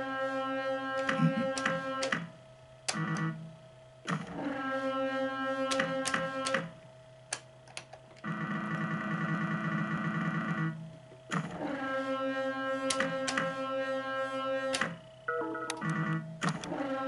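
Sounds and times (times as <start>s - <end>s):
slot machine synthesized music: 15.3s - 16.2s.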